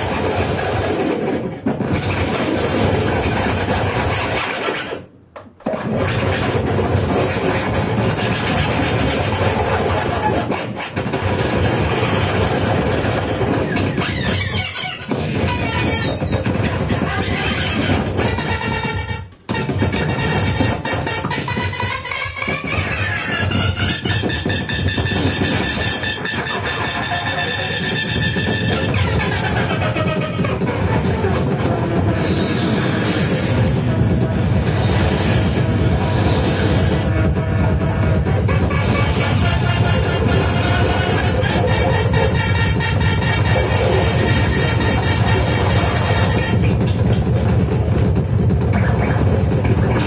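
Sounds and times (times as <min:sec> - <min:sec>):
grinding noise music: 0:06.0 - 0:50.0.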